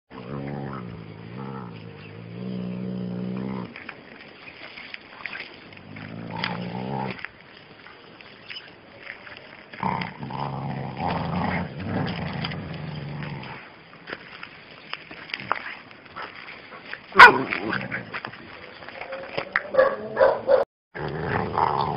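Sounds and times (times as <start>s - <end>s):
dogs growling: 0.1s - 3.8s, 5.8s - 7.2s, 9.8s - 13.7s, 19.5s - 21.9s.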